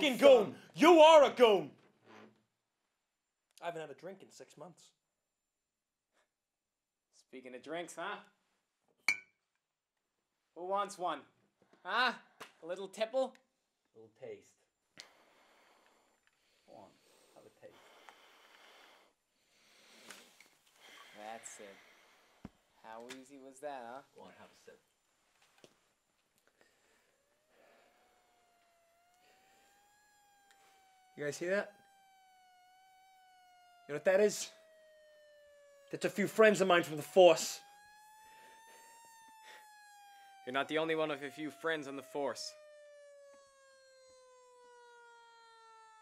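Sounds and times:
police siren wailing: 0.0 - 1.7, 26.5 - 46.0.

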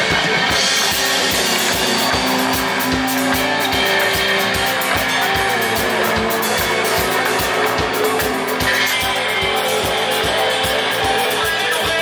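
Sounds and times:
bass guitar: 0.0 - 12.0
drum kit steady beat: 0.0 - 12.0
electric guitars: 0.0 - 12.0.

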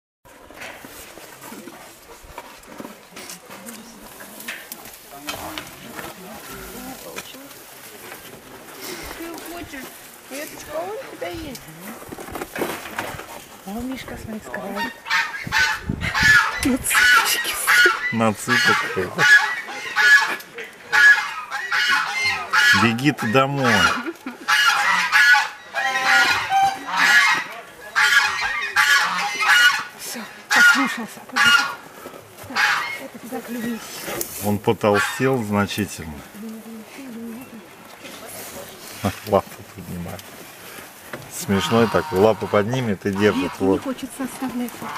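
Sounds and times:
geese calling: 13.6 - 44.9.

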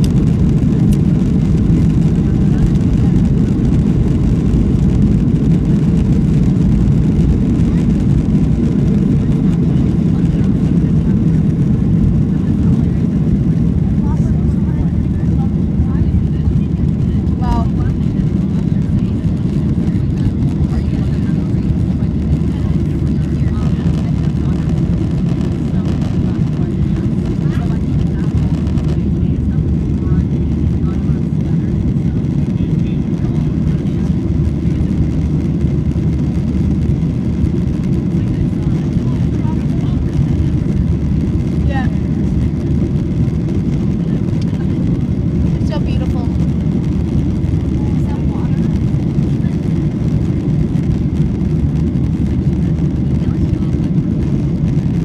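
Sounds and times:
jet engines roaring in cabin: 0.0 - 55.0.

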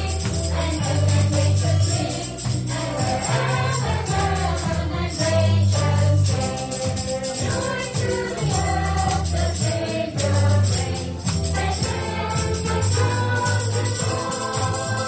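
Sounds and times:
gospel choir singing: 0.0 - 15.0
hand-clapping in time: 0.0 - 15.0.

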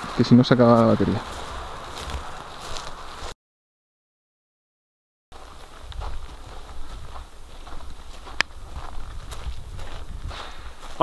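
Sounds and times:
footsteps on dirt and gravel: 0.0 - 3.4, 5.3 - 11.0.

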